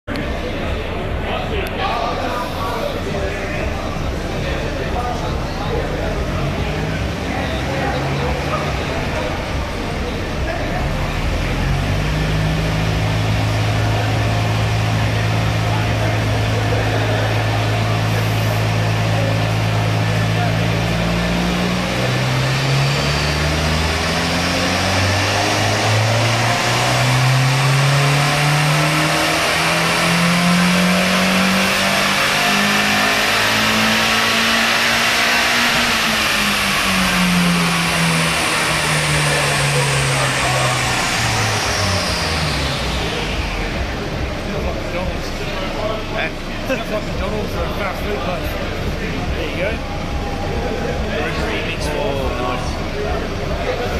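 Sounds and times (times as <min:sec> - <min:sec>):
car engine revving on dyno: 0:00.0 - 0:53.9.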